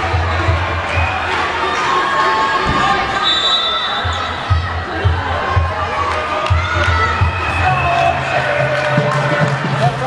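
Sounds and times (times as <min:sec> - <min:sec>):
fans shouting and cheering: 0:00.0 - 0:10.0.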